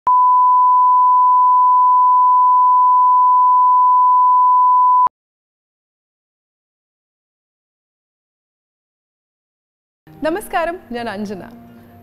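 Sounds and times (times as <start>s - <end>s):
pure test tone: 0.1s - 5.1s.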